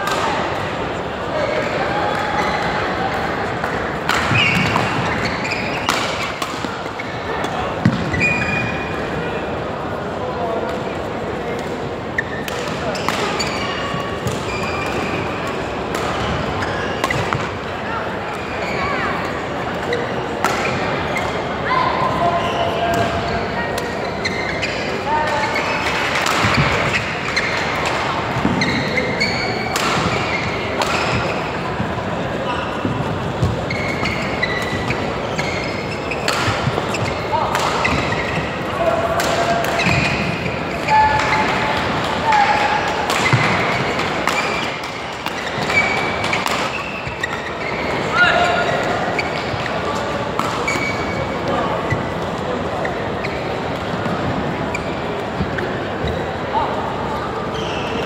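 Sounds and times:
rackets hitting shuttlecock: 0.0 - 0.8, 3.5 - 9.0, 11.6 - 17.7, 19.8 - 21.4, 25.2 - 32.0, 32.9 - 47.8, 48.7 - 51.2
chatter in sports hall: 0.0 - 58.0
shoes squeaking on floor: 4.3 - 9.0, 12.1 - 15.5, 16.1 - 17.7, 18.3 - 56.7, 57.3 - 58.0.

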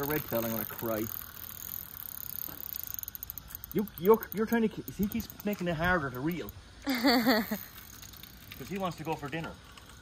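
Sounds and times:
fishing reel clicking: 0.0 - 6.6, 7.4 - 8.9.

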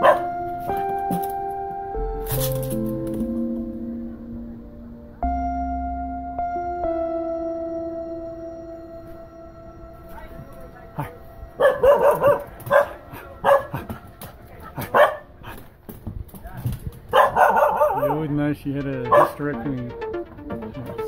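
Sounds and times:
dog barking: 0.0 - 0.5, 11.0 - 15.6, 17.1 - 18.3, 19.1 - 19.5.

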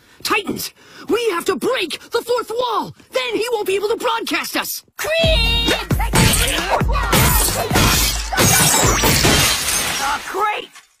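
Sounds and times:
voices yelling: 5.0 - 9.0
cartoon glass shattering: 6.2 - 11.0.

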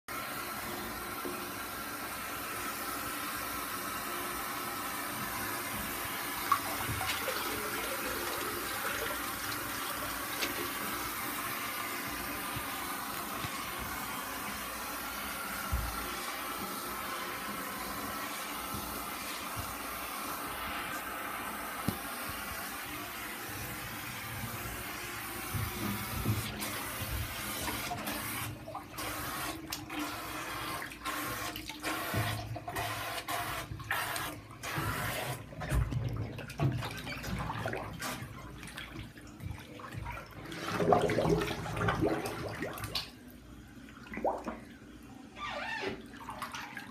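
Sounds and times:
water running into bathtub: 0.1 - 46.9.

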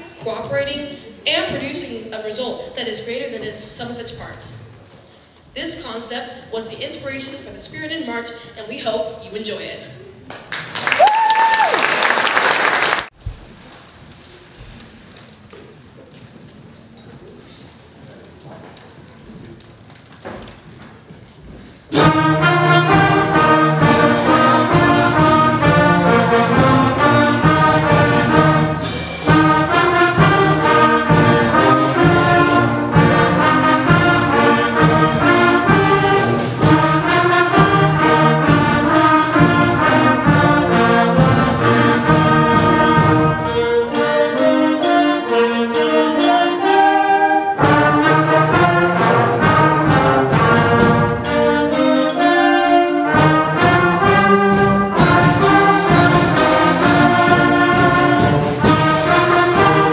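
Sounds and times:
concert band playing a march: 21.7 - 59.9
steady drum beats: 21.9 - 59.9.

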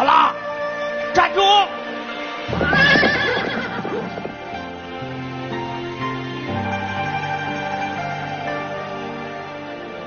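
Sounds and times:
music with held notes: 0.0 - 10.0
horse whinny: 2.5 - 4.5
galloping hoofbeats: 2.5 - 4.7.

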